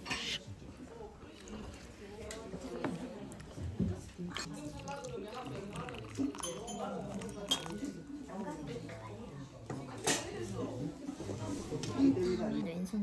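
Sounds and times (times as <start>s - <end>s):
low background talk: 0.0s - 13.0s
porcelain tea ware clinking: 4.4s - 8.1s.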